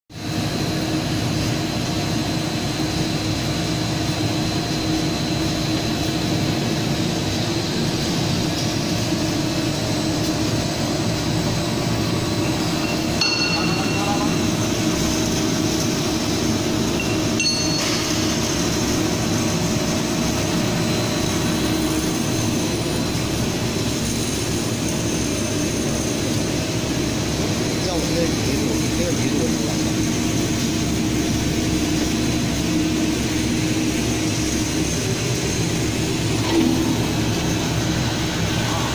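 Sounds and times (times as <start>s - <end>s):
machine drone with high whine: 0.2s - 38.9s.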